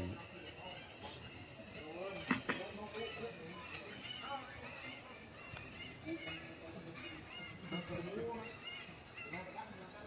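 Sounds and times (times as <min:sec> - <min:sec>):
lower animal calls: 0:00.0 - 0:00.3.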